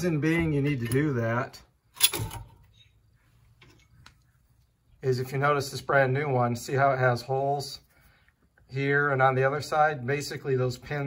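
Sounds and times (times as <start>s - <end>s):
parts being handled clack: 2.0s - 2.9s.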